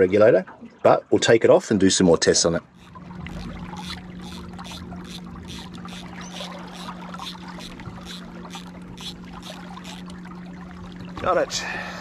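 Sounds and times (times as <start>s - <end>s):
steady low hum: 2.2s - 12.0s
water pouring and splashing: 2.6s - 11.6s.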